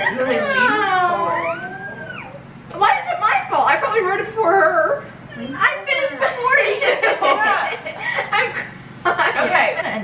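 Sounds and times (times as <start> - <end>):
girls talking excitedly: 2.8 - 7.8.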